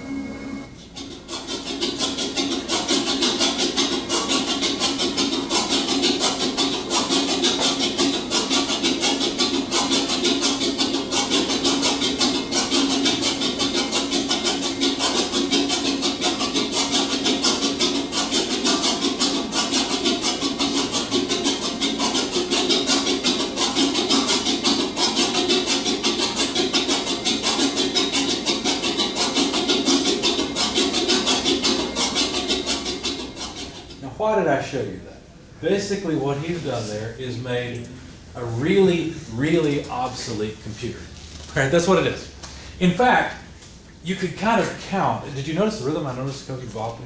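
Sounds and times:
relays clicking rhythmically: 0:01.2 - 0:33.9.

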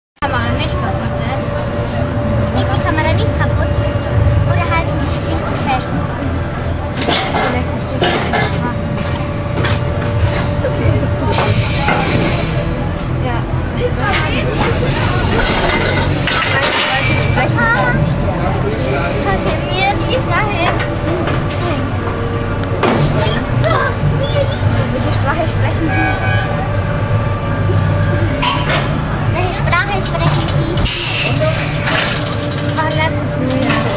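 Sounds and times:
amusement ride rumbling: 0:00.2 - 0:33.9
low machine hum: 0:00.2 - 0:33.9.

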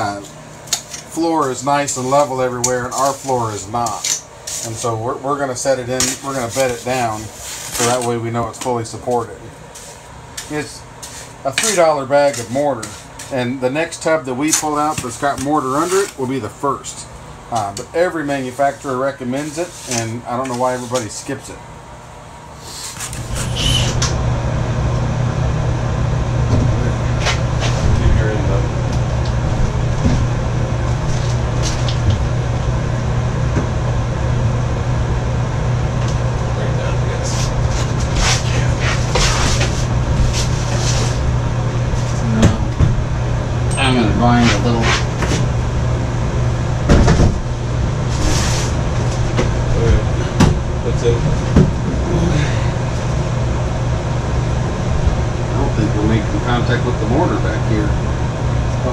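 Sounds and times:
steady low hum: 0:00.0 - 0:58.9.

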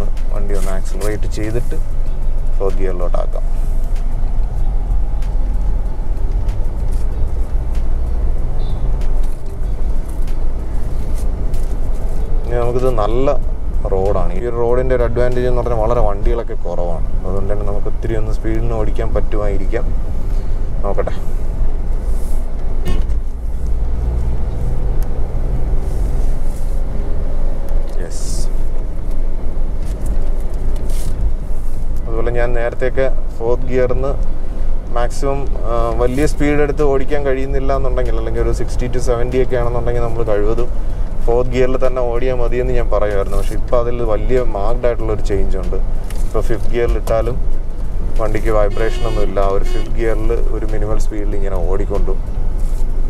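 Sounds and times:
car engine and road rumble: 0:00.0 - 0:53.0.

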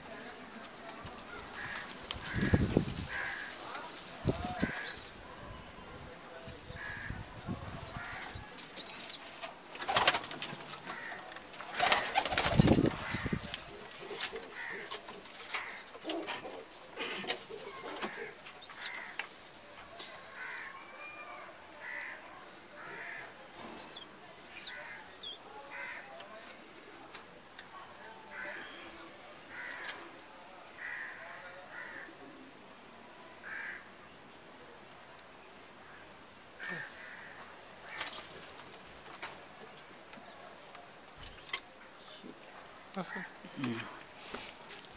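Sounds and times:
pigeons cooing: 0:07.8 - 0:19.2
pigeon wings flapping: 0:09.7 - 0:15.1.

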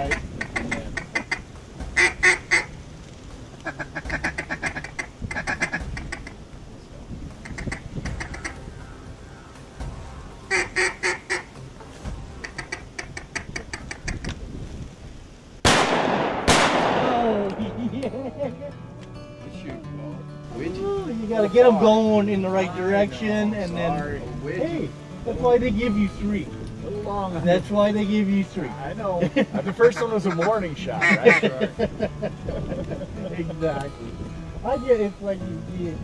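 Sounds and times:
duck quacks: 0:00.0 - 0:02.7, 0:03.6 - 0:06.4, 0:07.4 - 0:08.6, 0:10.5 - 0:11.5, 0:12.4 - 0:14.3, 0:29.6 - 0:31.7
shotgun shots: 0:15.6 - 0:17.8.

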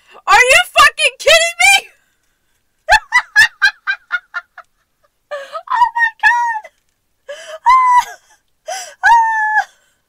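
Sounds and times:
woman laughing: 0:02.9 - 0:05.8, 0:07.3 - 0:08.4.

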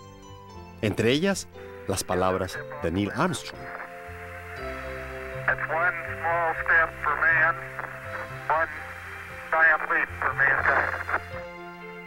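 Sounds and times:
soft background music: 0:00.0 - 0:12.0
man speaking over radio: 0:02.1 - 0:03.9, 0:05.4 - 0:08.9, 0:09.5 - 0:11.2.

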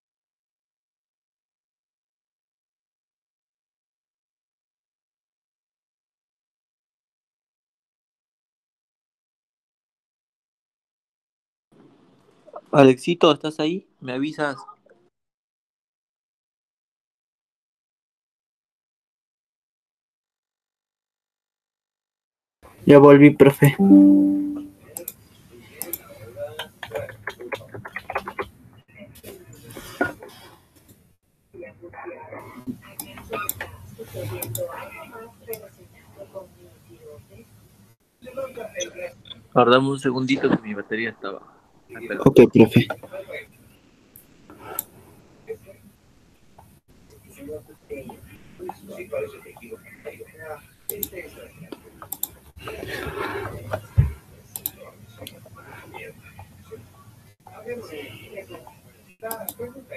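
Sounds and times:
faint talk over video call: 0:12.4 - 0:15.1, 0:22.8 - 0:30.6, 0:31.5 - 0:43.7, 0:46.6 - 0:59.9
low speech over video call: 0:38.4 - 0:43.4.

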